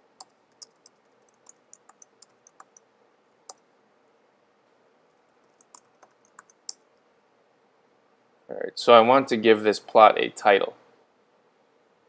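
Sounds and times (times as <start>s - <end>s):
computer keyboard keystrokes: 0.2s - 2.8s, 5.5s - 6.8s.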